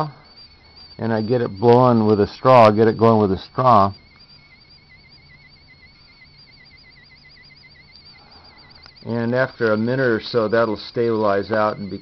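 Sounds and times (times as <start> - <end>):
warbling high electronic whine: 0.0 - 12.0.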